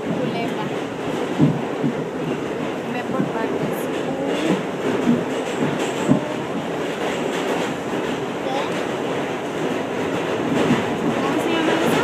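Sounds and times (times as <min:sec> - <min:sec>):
train wheels rumbling on track: 0:00.0 - 0:12.0.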